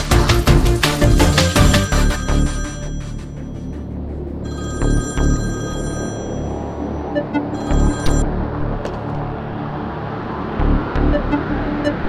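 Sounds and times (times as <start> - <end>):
background music: 0.0 - 12.0
mobile phone ringing: 1.5 - 3.8, 4.5 - 8.3.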